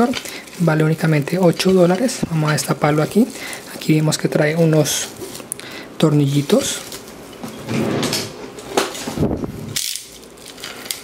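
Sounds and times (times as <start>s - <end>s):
plastic bag crinkling: 0.0s - 7.3s, 8.9s - 11.0s.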